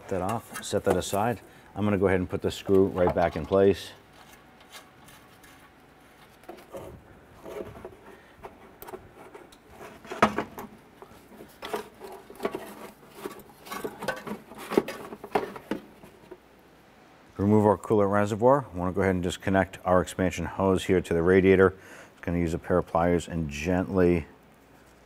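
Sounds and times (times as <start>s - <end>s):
gloved hands handling car parts: 0.0s - 16.5s.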